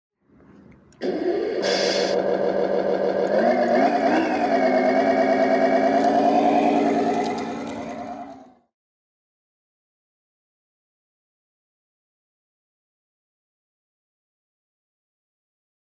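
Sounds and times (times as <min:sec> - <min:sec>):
simulated truck engine: 0:00.3 - 0:08.7
brief hiss: 0:01.6 - 0:02.2.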